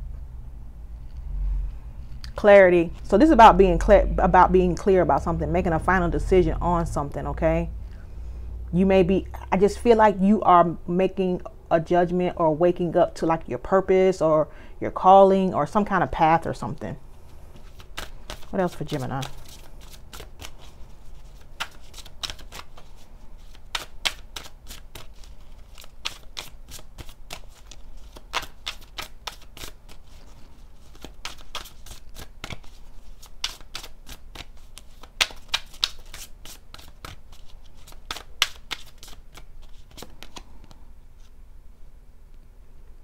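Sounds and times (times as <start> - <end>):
cards being shuffled: 17.3 - 41.4.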